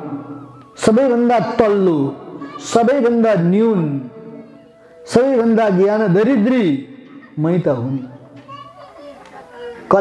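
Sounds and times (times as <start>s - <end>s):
man's amplified speech: 0.0s - 8.2s
faint voices murmuring: 4.0s - 10.0s.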